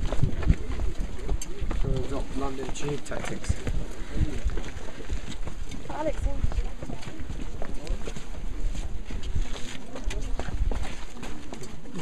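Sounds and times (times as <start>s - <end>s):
wind rumble on microphone: 0.0s - 2.2s, 3.4s - 11.0s
group of people talking: 0.0s - 12.0s.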